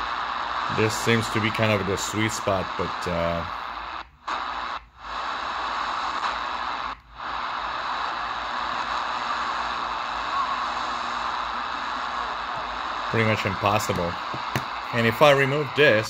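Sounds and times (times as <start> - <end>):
shortwave radio static hiss: 0.0 - 16.0.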